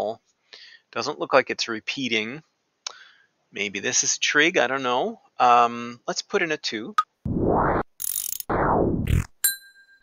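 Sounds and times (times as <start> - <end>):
rushing sound effect: 7.3 - 9.3
bright bell-like ding: 9.4 - 10.0.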